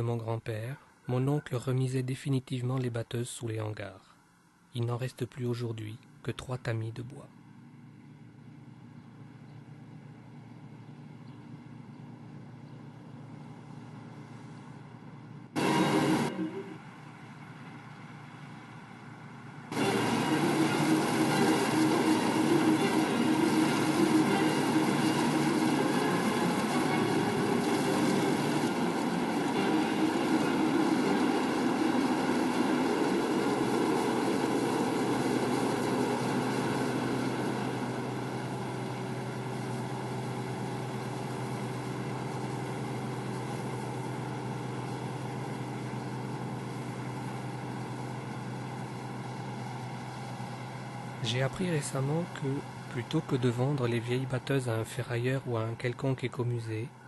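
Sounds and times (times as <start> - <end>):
combine harvester droning: 7.3 - 57.0.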